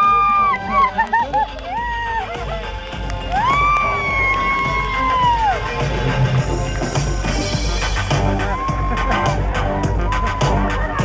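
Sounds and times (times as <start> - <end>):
crowd cheering: 0.0 - 11.0
loud music: 0.0 - 11.0
high-pitched whoop: 3.4 - 5.6, 8.4 - 9.4.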